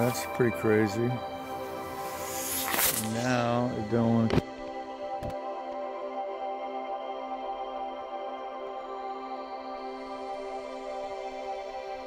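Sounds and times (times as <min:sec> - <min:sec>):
ambient music with held drone: 0:00.0 - 0:12.0.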